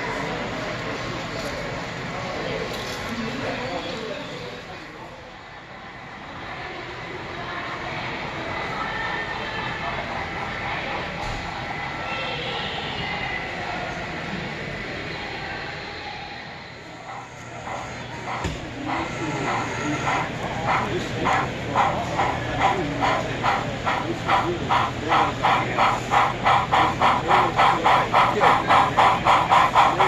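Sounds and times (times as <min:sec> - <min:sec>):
busy exhibition hall noise: 0:00.0 - 0:30.0
model train running: 0:00.0 - 0:30.0
voices: 0:00.0 - 0:30.0.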